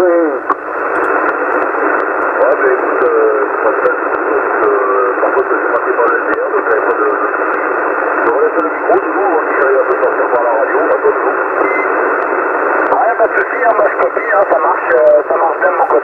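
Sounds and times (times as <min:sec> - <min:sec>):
radio hiss: 0:00.0 - 0:16.0
faint radio voice: 0:02.4 - 0:07.4, 0:08.2 - 0:11.7, 0:12.9 - 0:16.0.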